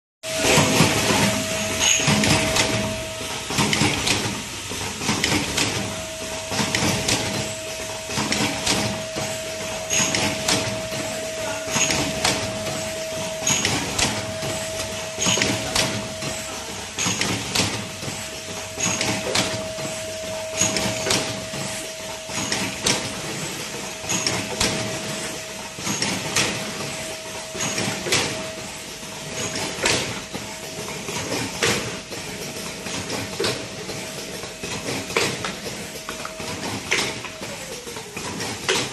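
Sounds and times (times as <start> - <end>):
steady machine hum: 0.2 - 38.9
machine clacking and knocking: 0.3 - 38.9.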